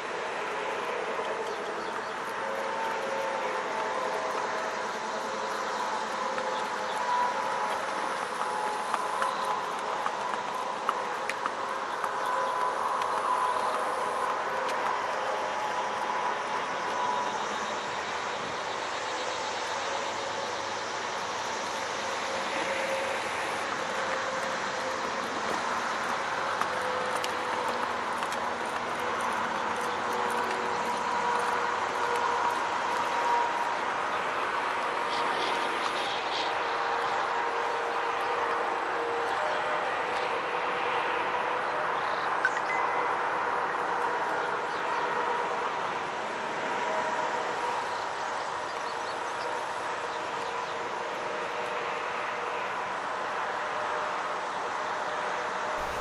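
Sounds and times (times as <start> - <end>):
faint steady tones: 0.0 - 53.2, 55.8 - 56.0
traffic engine drone: 0.0 - 56.0.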